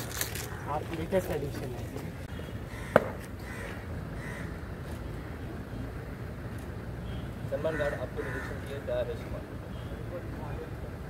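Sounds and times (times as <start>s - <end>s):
crows cawing: 2.4s - 5.4s, 7.6s - 9.0s.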